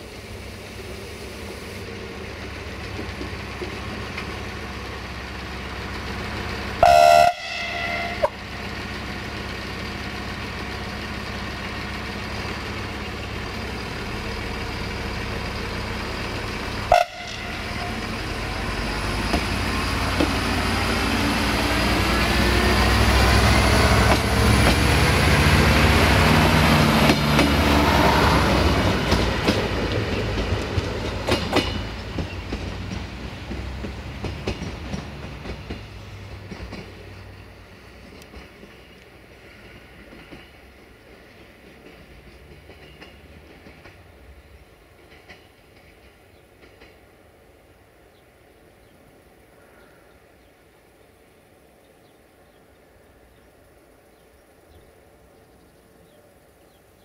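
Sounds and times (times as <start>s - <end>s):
diesel train engine whine: 0.0s - 57.0s
wheels clicking over rail joints: 2.3s - 6.9s, 8.2s - 47.2s
train horn: 6.8s - 8.4s, 16.9s - 18.3s.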